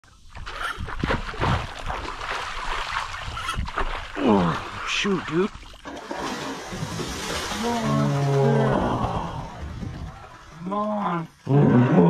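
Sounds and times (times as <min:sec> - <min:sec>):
river water splashing: 0:00.3 - 0:10.8.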